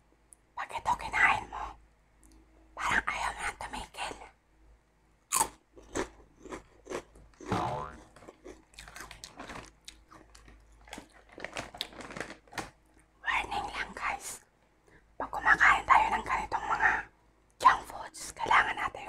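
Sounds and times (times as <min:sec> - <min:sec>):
crunching and chewing snack: 0:05.3 - 0:13.1
snack bag crinkling: 0:05.9 - 0:13.0
person speaking softly: 0:07.5 - 0:08.0.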